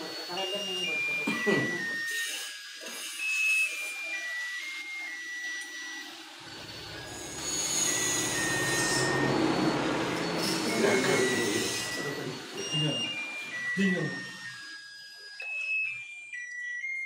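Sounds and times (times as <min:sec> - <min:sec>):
electronic melody of pure notes: 0:00.0 - 0:02.0, 0:04.1 - 0:17.0.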